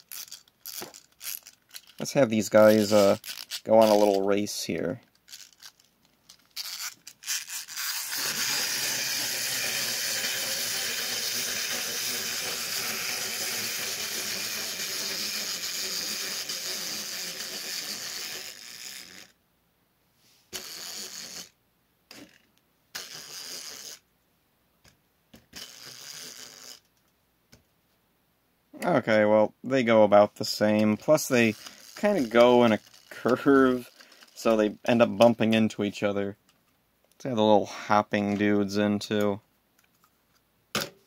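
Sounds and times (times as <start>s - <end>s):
clockwork toys whirring: 0.0s - 4.2s, 6.5s - 19.4s, 20.5s - 21.5s, 23.0s - 24.0s, 25.5s - 26.9s, 31.1s - 34.6s
clicks of winding toys: 0.0s - 19.3s, 20.6s - 21.5s, 22.1s - 24.0s, 25.4s - 27.1s, 30.7s - 35.6s.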